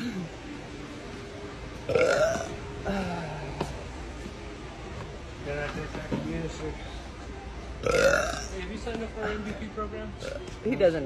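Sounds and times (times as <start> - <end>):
woman burping loudly: 1.9 - 3.2, 7.8 - 8.5.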